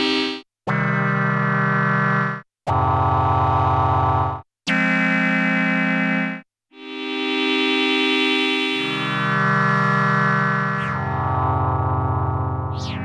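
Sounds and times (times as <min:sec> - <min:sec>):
synthesizer playing held chords: 0:06.8 - 0:13.0.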